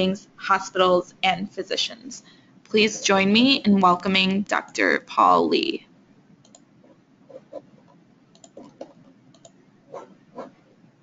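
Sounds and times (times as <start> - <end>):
computer mouse clicks: 6.4 - 6.7, 8.3 - 9.6.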